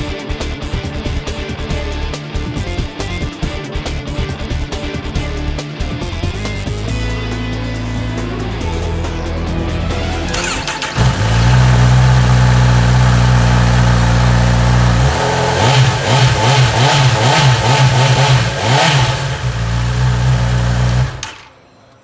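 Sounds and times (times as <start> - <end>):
motorcycle engine idling and revving: 10.3 - 21.5.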